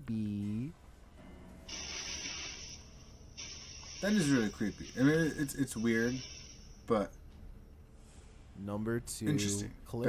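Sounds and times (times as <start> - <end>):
hissing scratchy noise: 1.7 - 7.0.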